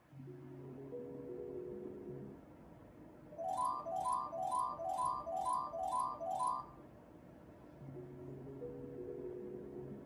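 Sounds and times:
slot machine win jingle: 3.4s - 6.7s.

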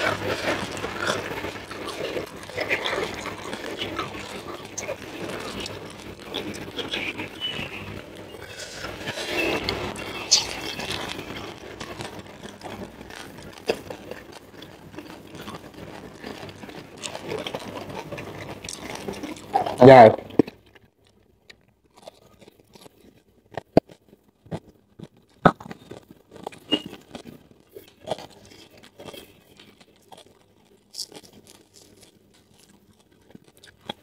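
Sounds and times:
mouth noises: 0.0s - 14.1s.

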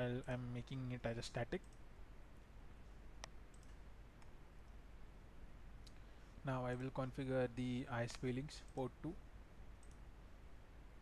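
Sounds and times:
computer mouse click: 3.2s - 4.8s, 9.8s - 10.0s.

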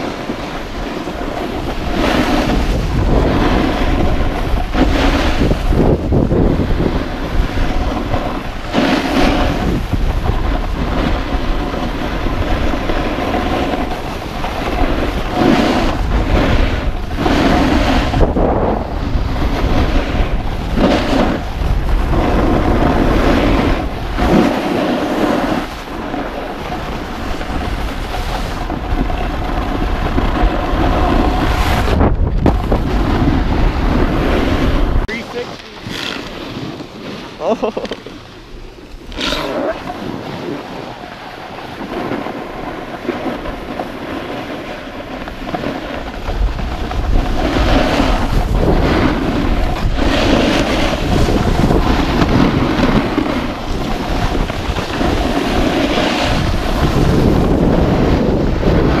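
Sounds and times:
snowboard scraping on snow: 0.0s - 59.0s
wind buffeting microphone: 0.0s - 59.0s.

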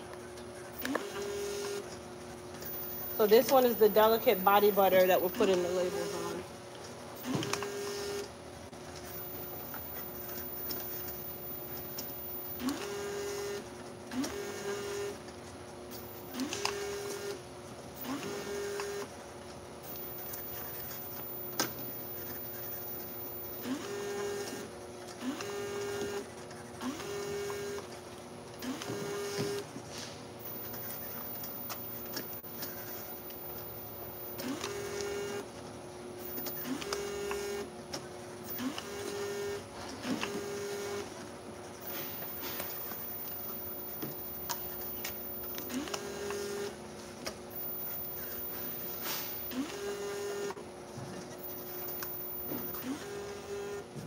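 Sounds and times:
conveyor hum: 0.0s - 54.0s
labeling machine whirring: 0.7s - 1.9s, 2.6s - 6.5s, 8.9s - 15.2s, 15.9s - 17.4s, 19.8s - 26.2s, 30.4s - 35.5s, 36.2s - 37.7s, 38.4s - 41.2s, 41.8s - 46.8s, 47.5s - 50.6s, 51.4s - 53.9s.

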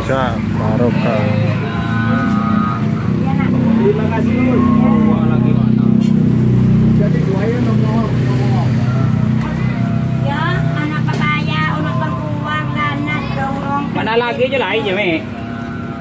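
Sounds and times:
people talking: 0.0s - 16.0s
vehicle engine rumble: 0.0s - 16.0s.

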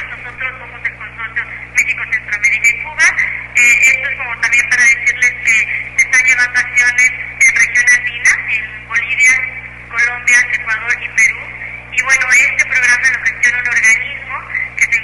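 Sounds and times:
man talking over phone: 0.0s - 15.0s
steady low hum: 0.0s - 15.0s.

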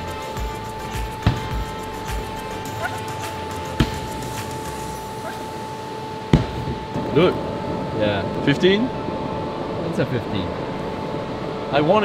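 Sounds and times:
background music with held tones: 0.0s - 7.7s.

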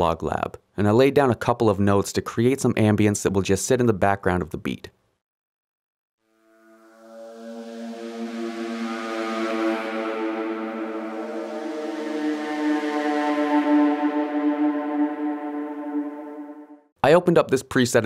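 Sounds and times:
sustained synthesizer pad: 6.3s - 16.9s.

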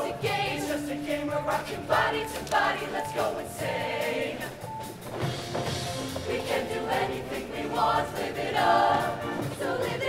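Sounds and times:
choir singing: 0.0s - 4.8s, 6.0s - 10.0s
live band playing: 4.4s - 7.1s.

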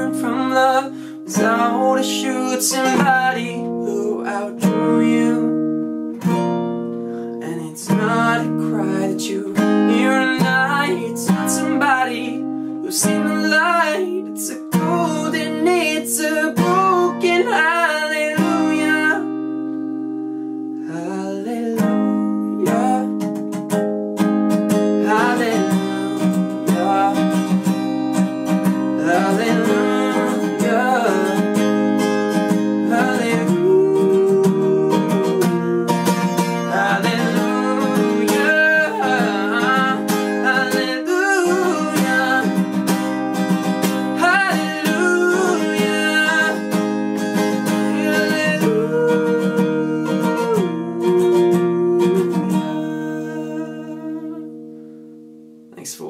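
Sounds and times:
man singing wordless notes: 0.0s - 5.6s, 7.4s - 19.4s, 20.8s - 23.4s, 24.9s - 54.6s, 55.7s - 56.0s
fingerpicked acoustic guitar: 0.0s - 56.0s.

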